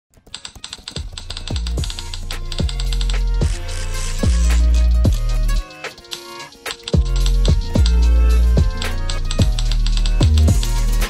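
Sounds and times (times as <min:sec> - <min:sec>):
keyboard typing clicks: 0:00.1 - 0:03.6, 0:05.1 - 0:10.6
music with kick drum and bass: 0:00.9 - 0:11.0.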